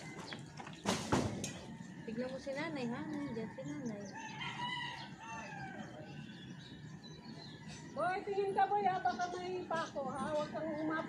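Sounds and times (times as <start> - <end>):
rooster crowing: 3.2 - 6.1.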